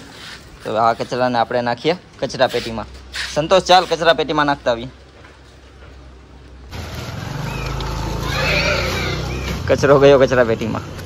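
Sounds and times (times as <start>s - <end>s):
street noise: 0.0s - 11.0s
pig squealing: 7.2s - 9.6s.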